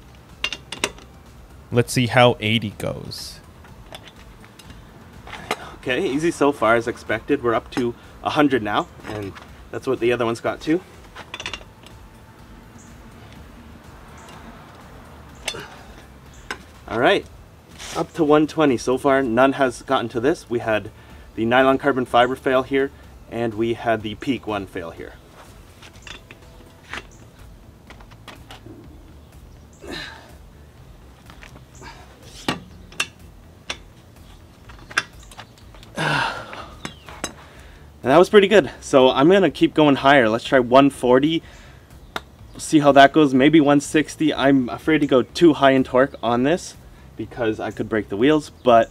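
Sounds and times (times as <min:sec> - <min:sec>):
low background hiss: 0:00.0 - 0:48.9.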